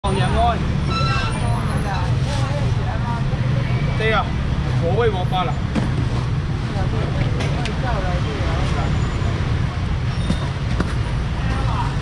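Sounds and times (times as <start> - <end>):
people talking: 0.0 - 5.6, 6.6 - 10.5, 11.3 - 12.0.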